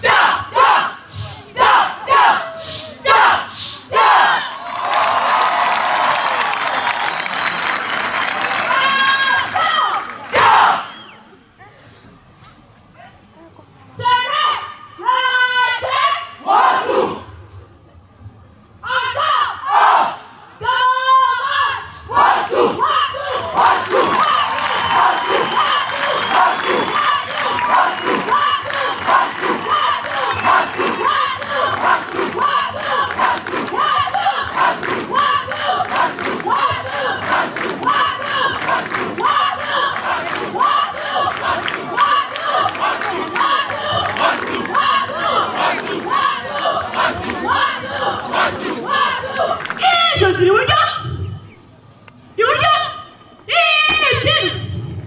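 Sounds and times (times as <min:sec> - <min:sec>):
group chanting: 0:00.0 - 0:04.6, 0:10.3 - 0:11.0, 0:15.1 - 0:17.3, 0:19.1 - 0:20.8, 0:22.0 - 0:49.8
long shouted calls: 0:18.8 - 0:35.8.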